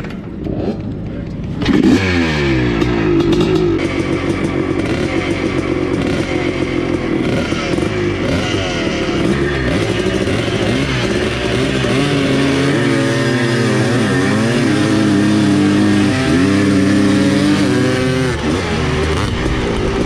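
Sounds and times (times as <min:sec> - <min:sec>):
motorcycle engine accelerating: 0:00.0 - 0:20.0
other motorcycles running: 0:00.0 - 0:20.0.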